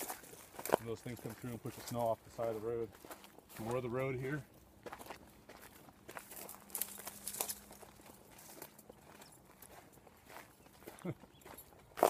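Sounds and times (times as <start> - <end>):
footsteps on gravel: 0.0 - 12.0.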